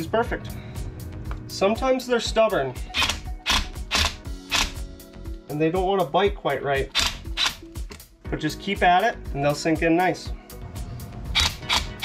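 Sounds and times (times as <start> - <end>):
impact driver bursts: 2.9 - 4.8.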